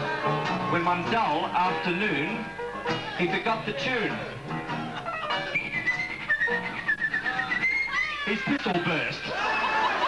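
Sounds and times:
plucked-string accompaniment: 0.0s - 9.3s
man whistling a tune: 5.5s - 7.9s.

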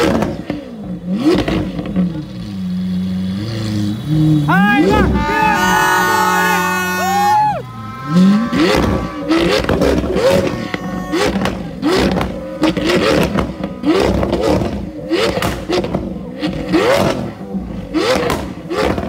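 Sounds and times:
exhaust pops and crackles: 0.0s - 2.2s, 8.6s - 19.0s
car engine revving: 0.0s - 19.0s.

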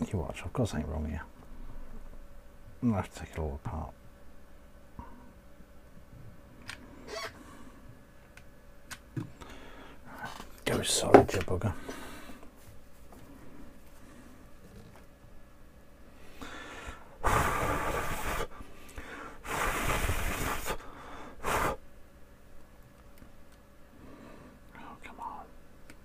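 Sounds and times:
person blowing out hard: 17.2s - 18.6s, 19.3s - 21.8s.

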